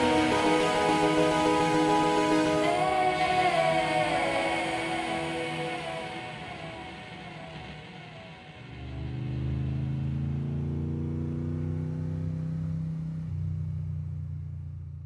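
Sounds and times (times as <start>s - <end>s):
song music: 0.0s - 11.0s
low steady drone: 0.0s - 15.0s.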